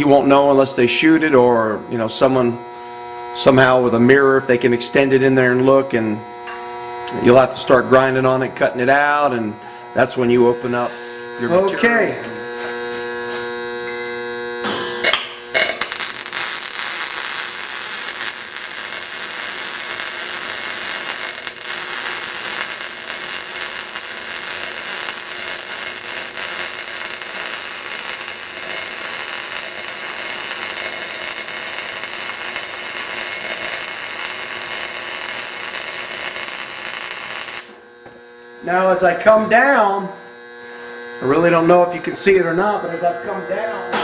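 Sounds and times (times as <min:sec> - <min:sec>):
welding arc crackling sizzle: 0:00.0 - 0:13.8, 0:14.5 - 0:42.8.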